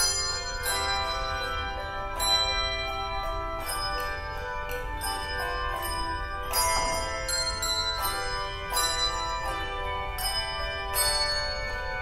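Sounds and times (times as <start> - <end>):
handbell choir ringing chords: 0.0 - 12.0.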